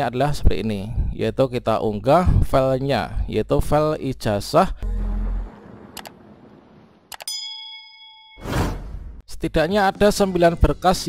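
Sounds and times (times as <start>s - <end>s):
bright bell-like ding: 7.3s - 8.5s.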